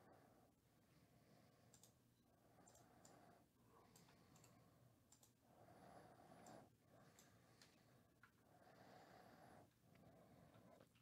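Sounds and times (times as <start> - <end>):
soft clicks: 1.7 - 2.0, 2.6 - 3.2, 3.9 - 5.4.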